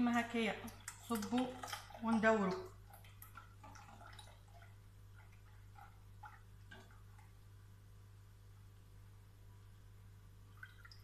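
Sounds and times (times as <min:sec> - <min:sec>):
liquid plopping and dripping: 0:00.4 - 0:07.6, 0:10.5 - 0:11.0.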